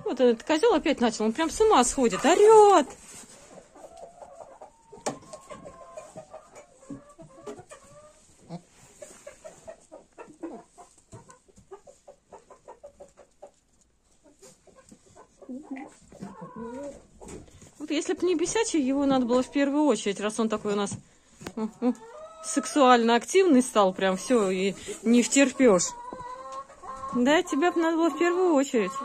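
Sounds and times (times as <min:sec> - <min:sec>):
hens clucking: 0:00.0 - 0:29.0.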